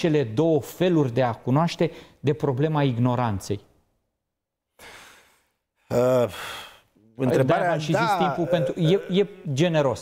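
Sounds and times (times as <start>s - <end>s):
man breathing in: 4.8s - 5.6s, 6.3s - 7.0s
man speaking: 5.9s - 10.0s.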